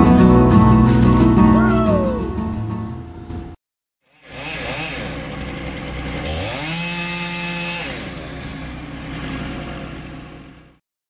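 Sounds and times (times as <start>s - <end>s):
chainsaw engine revving: 4.1s - 10.6s.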